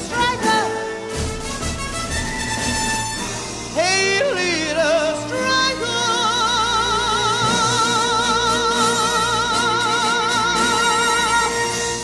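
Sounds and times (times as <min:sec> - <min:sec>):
woman singing wordless vocal: 0:00.0 - 0:00.9, 0:03.8 - 0:11.7
symphony orchestra: 0:00.0 - 0:12.0.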